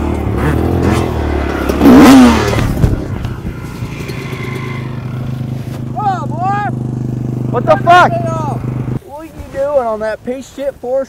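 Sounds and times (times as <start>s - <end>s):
dirt bike engine revving and idling: 0.0s - 9.0s.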